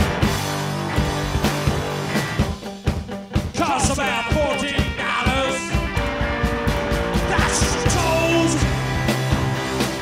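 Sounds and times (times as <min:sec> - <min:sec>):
drums: 0:00.0 - 0:10.0
electric guitar: 0:00.0 - 0:10.0.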